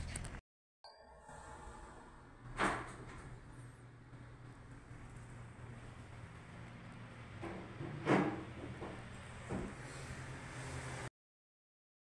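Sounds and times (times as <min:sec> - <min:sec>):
low hum: 0:00.9 - 0:10.7.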